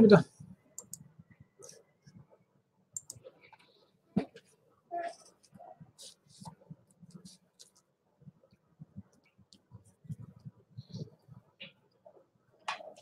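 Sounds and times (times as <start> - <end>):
computer mouse clicks: 0.8 - 1.8, 3.0 - 3.7.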